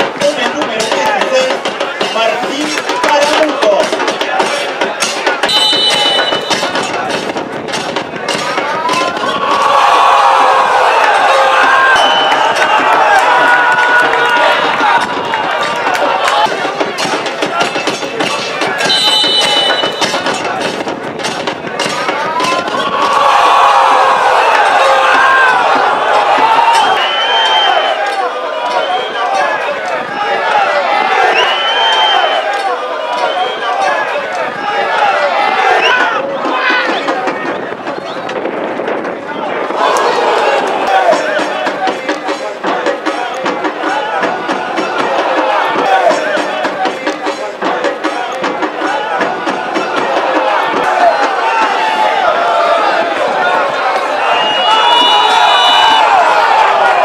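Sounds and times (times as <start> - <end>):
stadium crowd shouting: 0.0 - 57.0.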